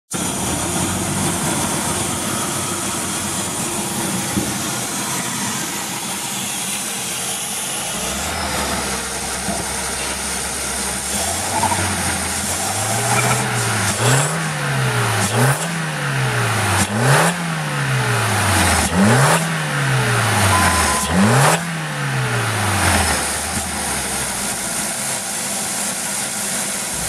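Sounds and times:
car engine idling roughly: 0.1 - 20.5, 21.7 - 27.0.

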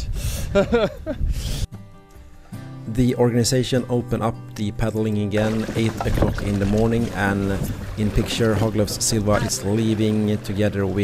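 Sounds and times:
wind rumble on microphone: 0.0 - 1.6
man laughing: 0.4 - 1.3
quiet background music: 1.8 - 11.0
man talking: 2.9 - 11.0.

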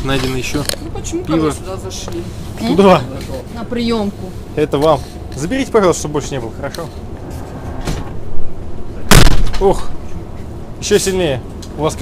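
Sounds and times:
low rumbling thuds: 7.0 - 10.5
heavy steel door opening: 7.3 - 8.4.

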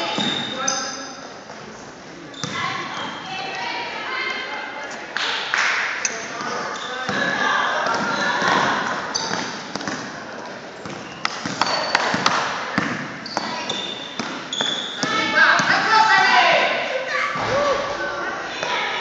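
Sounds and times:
sneaker squeaks: 0.0 - 1.3, 2.3 - 3.7, 6.0 - 15.8
voices of players and onlookers: 0.0 - 19.0.

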